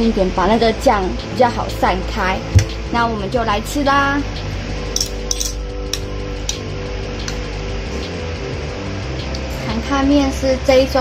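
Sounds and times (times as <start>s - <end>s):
background music: 0.0s - 11.0s
metal utensils clinking on bowl: 5.0s - 6.6s.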